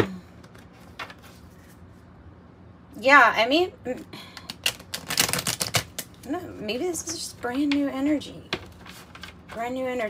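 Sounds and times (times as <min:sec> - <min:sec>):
cards being shuffled: 0:00.4 - 0:01.9, 0:04.4 - 0:06.2, 0:08.5 - 0:09.6.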